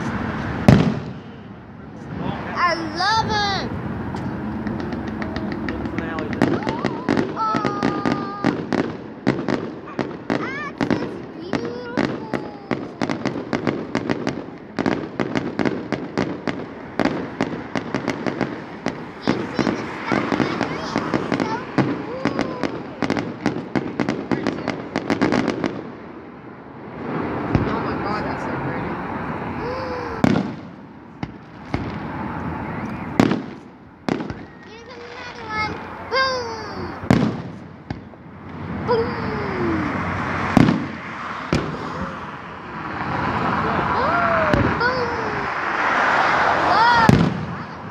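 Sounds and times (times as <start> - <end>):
fireworks bangs: 0.0 - 47.9.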